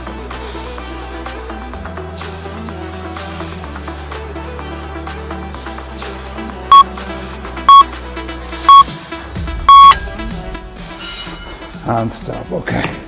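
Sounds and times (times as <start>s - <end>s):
long final beep: 7.7s - 7.9s, 9.7s - 10.0s
timer beeps: 7.7s - 7.9s, 8.7s - 8.9s, 9.7s - 10.1s.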